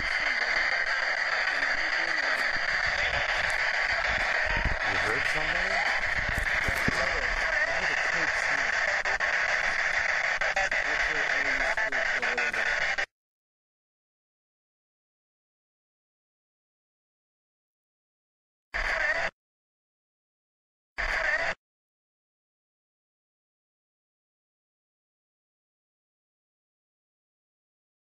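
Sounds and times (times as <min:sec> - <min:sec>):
choppy radio voices: 0:00.0 - 0:13.1, 0:18.8 - 0:19.3, 0:21.0 - 0:21.6
radio static hiss: 0:00.0 - 0:13.1, 0:18.8 - 0:19.3, 0:21.0 - 0:21.6.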